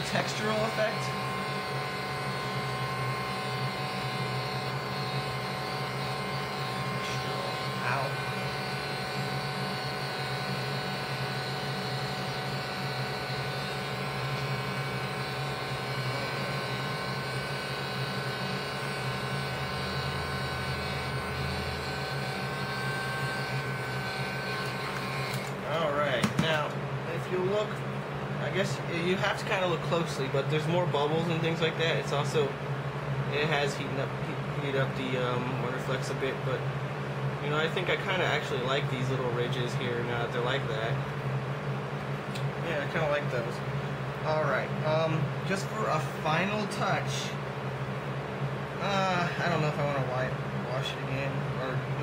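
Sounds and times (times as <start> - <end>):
heat gun fan blowing: 0.0 - 52.0.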